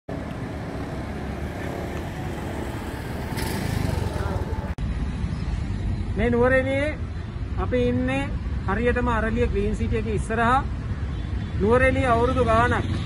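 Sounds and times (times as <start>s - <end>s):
traffic rumble: 0.1s - 13.0s.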